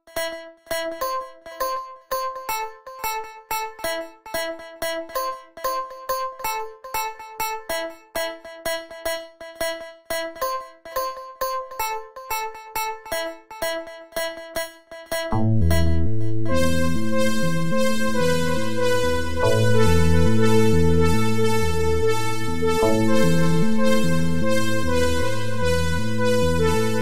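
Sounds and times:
electric piano looping melody: 0:15.6 - 0:27.0.

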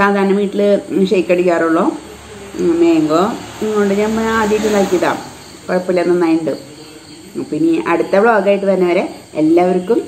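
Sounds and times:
woman talking: 0:00.0 - 0:10.0.

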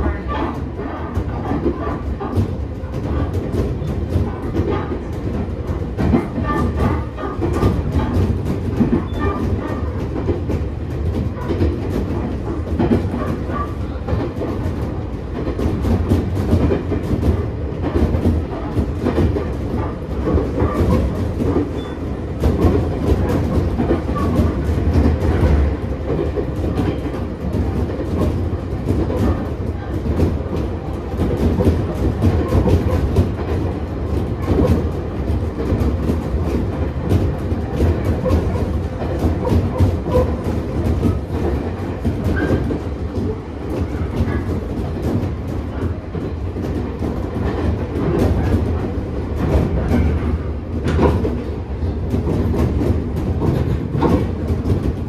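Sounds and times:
train wheels rumbling: 0:00.0 - 0:55.0.

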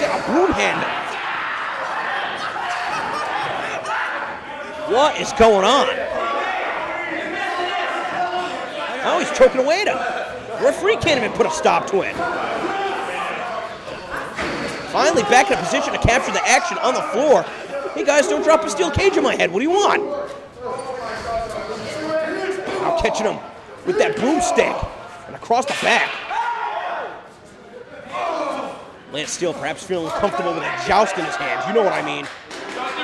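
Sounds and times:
people chattering and calling: 0:00.0 - 0:33.0.

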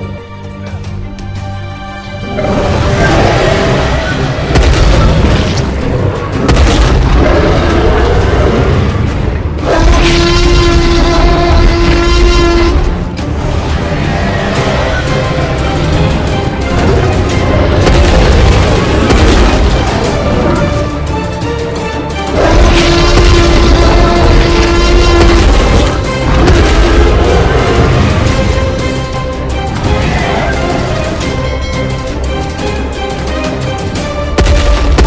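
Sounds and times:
dramatic film score music: 0:00.0 - 0:35.0
deep booming effects: 0:02.5 - 0:13.8, 0:15.6 - 0:20.9, 0:22.3 - 0:30.3, 0:34.4 - 0:35.0.

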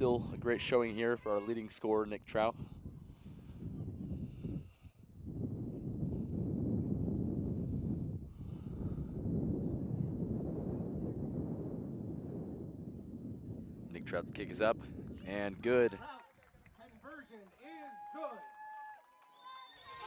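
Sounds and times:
wind buffeting microphone: 0:00.0 - 0:16.9.

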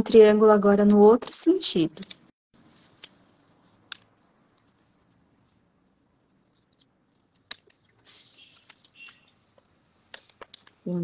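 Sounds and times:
paper crackling and tapping: 0:02.0 - 0:10.9.

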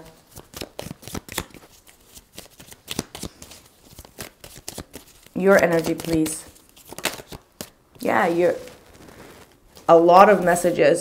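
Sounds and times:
cards being shuffled: 0:00.2 - 0:10.6.

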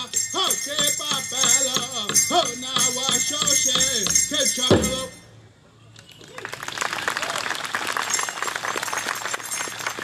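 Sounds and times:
rattling jingle: 0:00.0 - 0:05.4.

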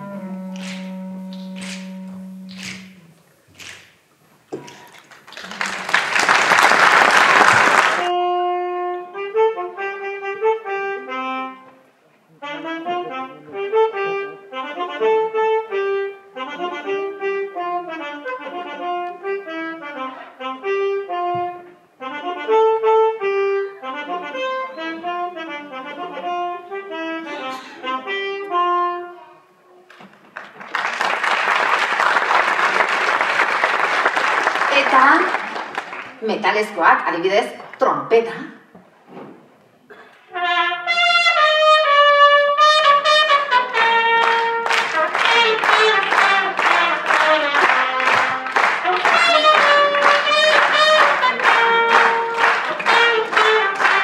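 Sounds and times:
concert band playing melody: 0:00.0 - 0:03.8, 0:42.5 - 0:54.0
applause: 0:00.6 - 0:01.8, 0:02.5 - 0:02.8, 0:03.6 - 0:03.9, 0:04.7 - 0:08.1, 0:30.0 - 0:36.2, 0:43.8 - 0:54.0.

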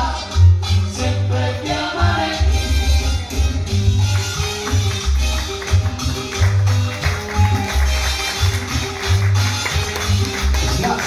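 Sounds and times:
keyboard: 0:00.0 - 0:11.0.

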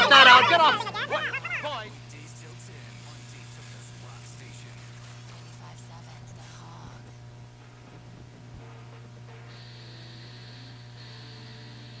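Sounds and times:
faint high whine: 0:00.0 - 0:12.0
mains hum: 0:00.0 - 0:12.0.

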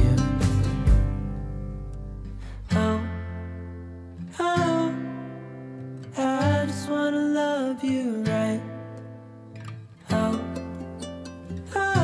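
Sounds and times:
acoustic guitar chords ringing: 0:00.0 - 0:12.0.

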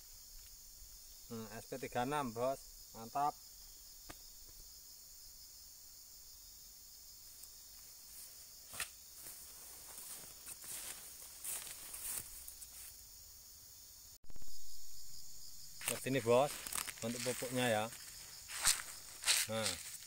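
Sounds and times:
insects droning: 0:00.0 - 0:20.0
footsteps rustling through grass: 0:07.2 - 0:13.0, 0:15.8 - 0:20.0.

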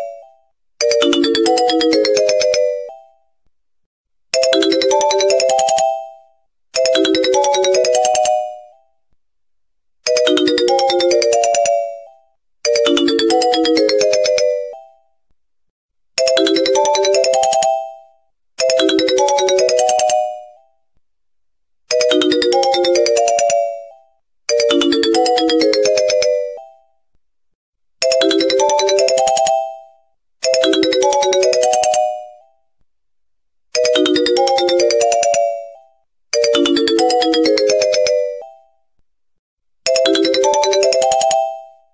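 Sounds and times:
electronic ringtone melody: 0:00.0 - 0:03.2, 0:04.4 - 0:08.8, 0:10.1 - 0:15.1, 0:16.2 - 0:20.7, 0:21.9 - 0:26.9, 0:28.0 - 0:32.5, 0:33.8 - 0:38.8, 0:39.9 - 0:41.9.

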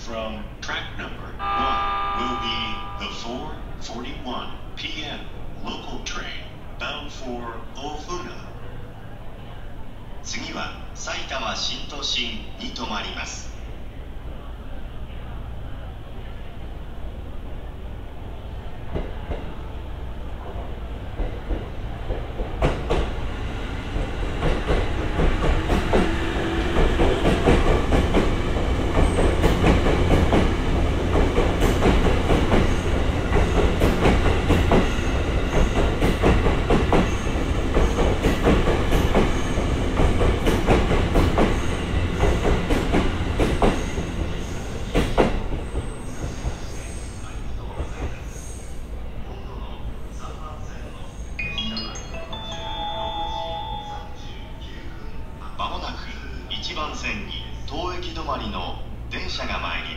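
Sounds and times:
electric train passing: 0:01.4 - 0:05.6, 0:20.8 - 0:45.9, 0:51.2 - 0:57.4.

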